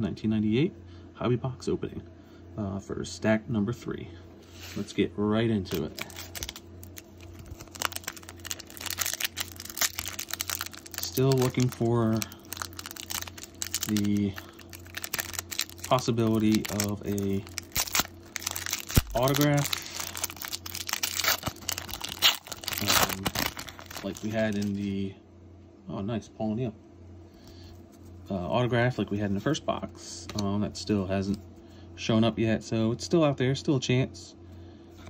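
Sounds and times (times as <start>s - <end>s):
foil wrapper crinkling and tearing: 5.7s - 24.9s.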